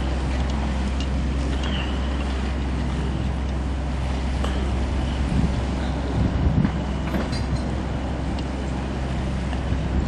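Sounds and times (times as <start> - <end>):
boat engine rumbling: 0.0 - 10.0
wind on microphone: 4.7 - 10.0.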